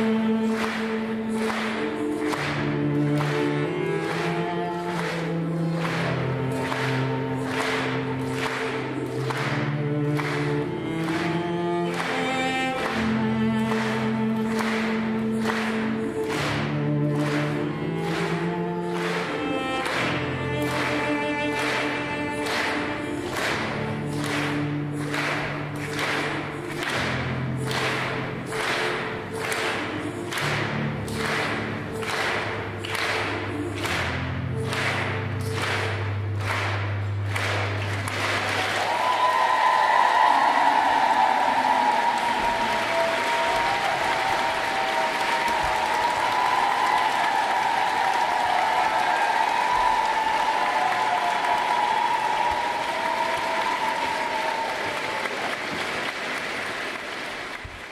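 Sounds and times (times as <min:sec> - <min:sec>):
cello: 0:00.0 - 0:55.2
piano: 0:00.0 - 0:56.2
audience applause and cheering: 0:00.0 - 0:57.9.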